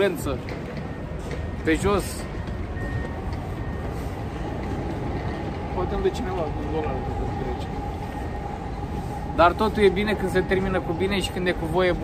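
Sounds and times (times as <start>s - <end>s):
vehicle rumble: 0.0s - 12.0s.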